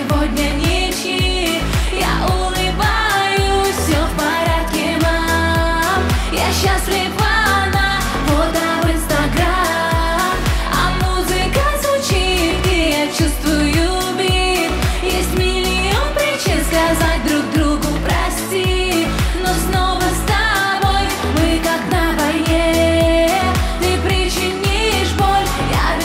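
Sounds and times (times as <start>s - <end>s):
dance-pop music with electronic beat: 0.0s - 26.0s
vocal line: 0.0s - 26.0s.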